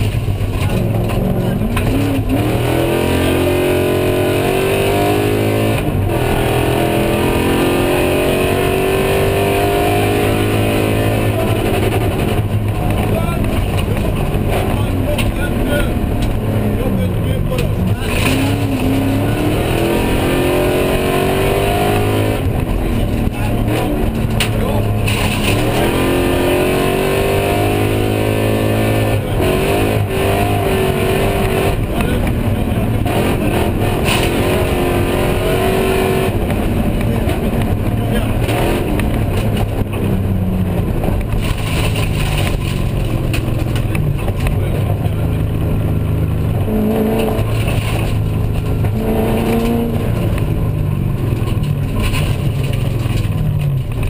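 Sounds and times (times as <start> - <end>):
car engine accelerating: 0.0 - 54.0
road and tyre noise: 0.0 - 54.0.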